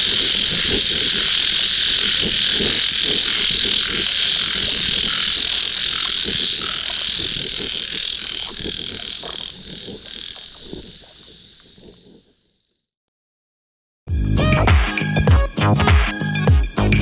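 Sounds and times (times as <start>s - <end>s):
frogs croaking: 0.0s - 12.9s.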